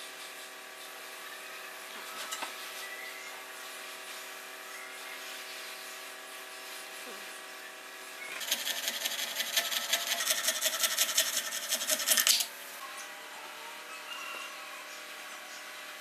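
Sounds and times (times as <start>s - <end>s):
saw rasping through plastic: 8.4s - 12.4s.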